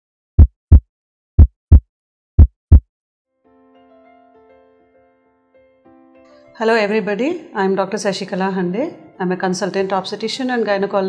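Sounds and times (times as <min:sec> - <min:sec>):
heartbeat: 0:00.4 - 0:00.8, 0:01.4 - 0:02.8
soft music with held notes: 0:03.3 - 0:10.2.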